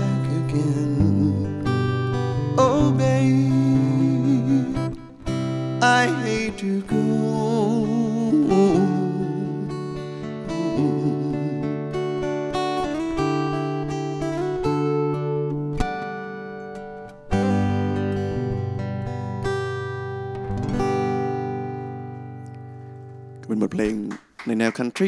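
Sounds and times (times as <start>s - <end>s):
acoustic guitar strumming chords: 0.0s - 24.1s.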